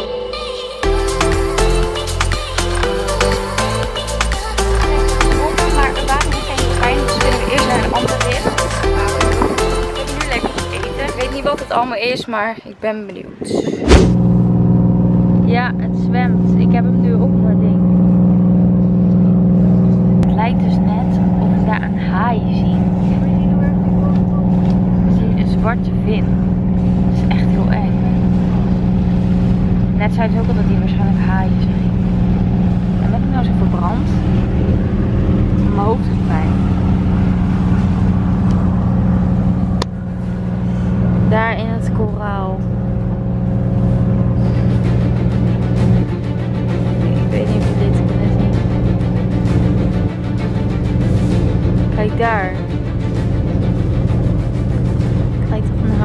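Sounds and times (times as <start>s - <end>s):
boat engine droning: 0.0s - 56.0s
voices: 4.2s - 14.1s, 15.3s - 18.1s, 19.0s - 29.2s, 29.8s - 39.1s, 41.2s - 44.8s, 46.9s - 49.2s, 51.8s - 52.8s, 55.4s - 56.0s.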